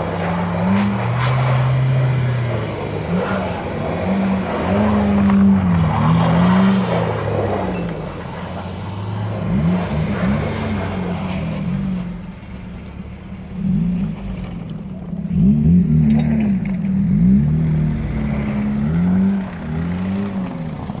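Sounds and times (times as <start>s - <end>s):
diesel van engine revving: 0.0s - 21.0s.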